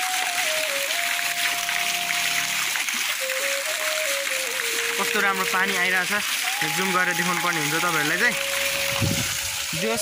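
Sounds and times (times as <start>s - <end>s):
fountain water splashing: 0.0s - 10.0s
slow melody of long notes: 6.5s - 10.0s.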